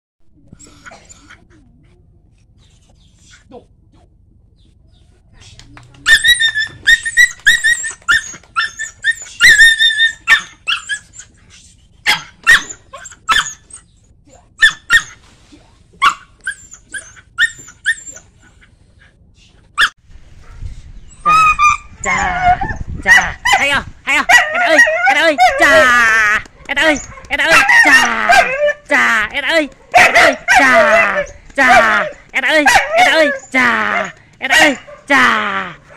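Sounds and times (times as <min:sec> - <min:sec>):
dog barking high-pitched: 0:09.4 - 0:10.9, 0:12.1 - 0:13.6, 0:14.6 - 0:15.2, 0:16.0 - 0:16.3, 0:24.3 - 0:26.0, 0:26.6 - 0:28.8, 0:29.7 - 0:35.2.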